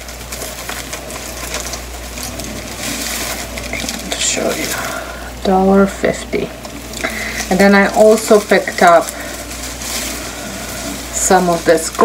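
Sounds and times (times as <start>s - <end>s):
artificial flower stems rustling: 0.0s - 12.0s.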